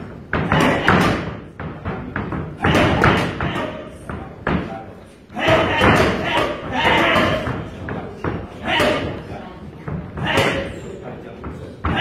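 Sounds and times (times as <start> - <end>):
boxing gloves hitting mitts: 0.0 - 4.8, 5.4 - 12.0.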